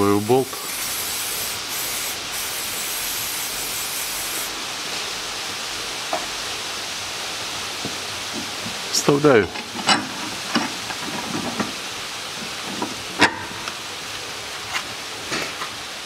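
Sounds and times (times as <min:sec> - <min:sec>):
aerosol spray hissing: 0:00.0 - 0:04.6.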